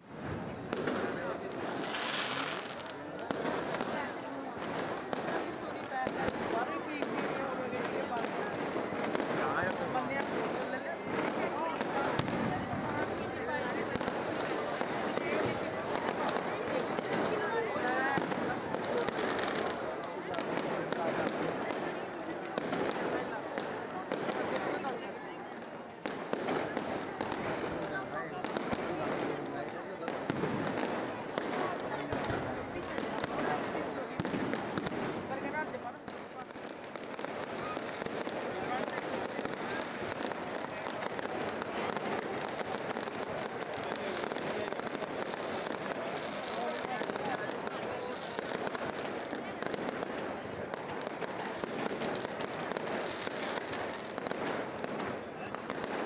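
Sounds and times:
crowd chatter: 0:00.0 - 0:56.0
fireworks popping and crackling: 0:00.1 - 0:56.0.

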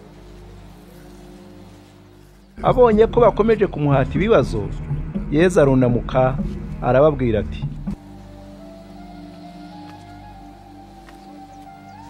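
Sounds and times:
quiet music with held tones: 0:00.0 - 0:12.0
person speaking: 0:02.6 - 0:07.7.

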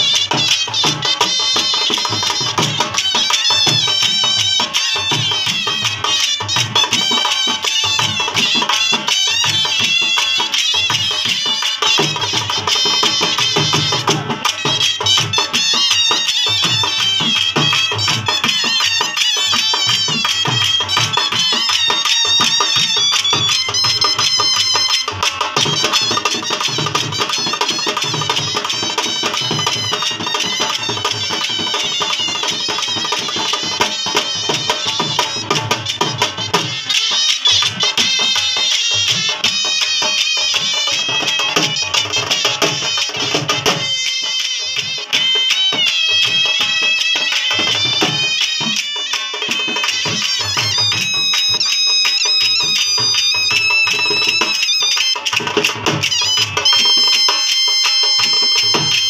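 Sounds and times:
dhol drums in fast rhythm: 0:00.0 - 0:59.0
high reedy shehnai melody: 0:00.0 - 0:59.0.

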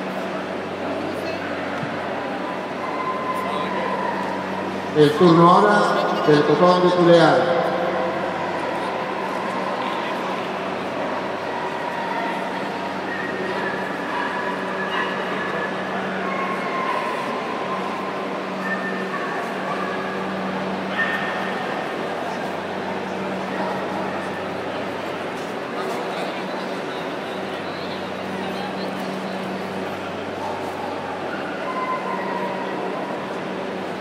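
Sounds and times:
crowd chatter in a hall: 0:00.0 - 0:34.0.

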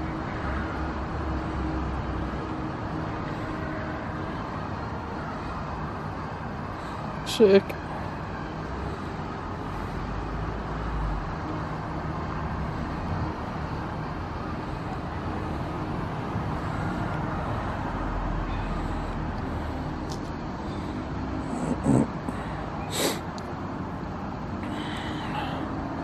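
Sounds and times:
distant road traffic: 0:00.0 - 0:26.0.

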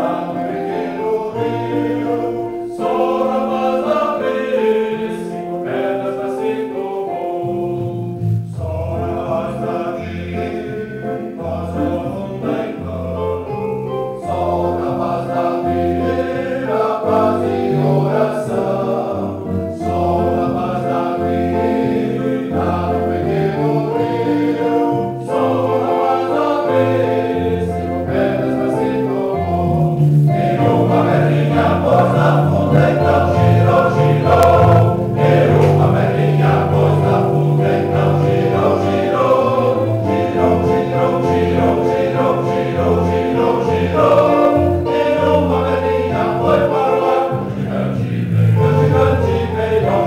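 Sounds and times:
men's choir singing a hymn: 0:00.0 - 0:50.0.

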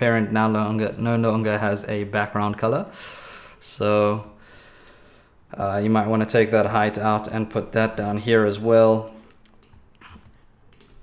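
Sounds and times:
faint keyboard keystrokes: 0:09.0 - 0:11.0.

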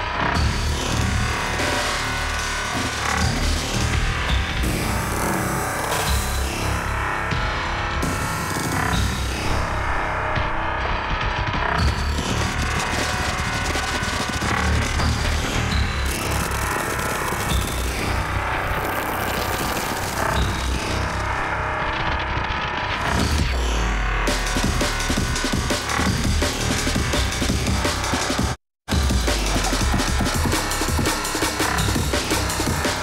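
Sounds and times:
bass-heavy electronic dance music: 0:00.0 - 0:33.0.

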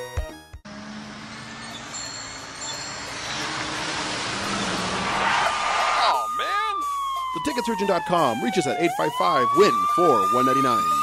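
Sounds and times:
road traffic hiss: 0:00.7 - 0:06.0.

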